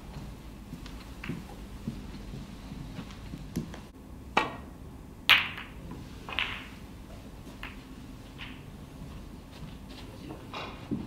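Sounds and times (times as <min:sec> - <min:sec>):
balls clicking together: 0:00.8 - 0:02.3, 0:05.3 - 0:06.9, 0:07.6 - 0:08.7
snooker balls cracking: 0:00.8 - 0:08.8, 0:10.3 - 0:11.0
cue tip clicking ball: 0:05.3 - 0:06.8, 0:07.6 - 0:08.6.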